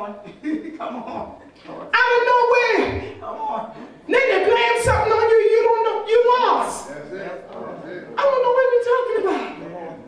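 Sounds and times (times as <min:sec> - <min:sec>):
woman preaching into microphone: 0:01.9 - 0:03.3, 0:04.1 - 0:06.9, 0:08.2 - 0:09.6.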